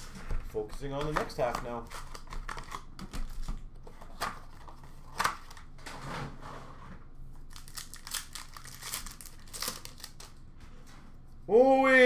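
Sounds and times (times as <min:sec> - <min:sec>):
card pack wrappers crinkling and tearing: 0:07.4 - 0:10.4
cards rustling: 0:07.4 - 0:10.4.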